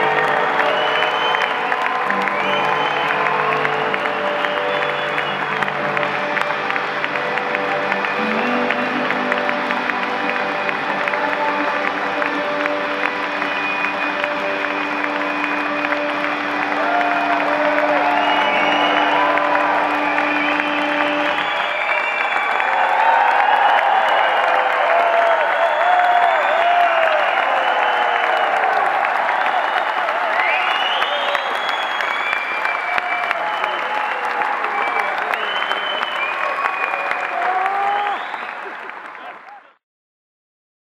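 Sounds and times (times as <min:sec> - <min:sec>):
audience applause: 0:00.0 - 0:39.8
crowd cheering and whooping: 0:00.0 - 0:39.8.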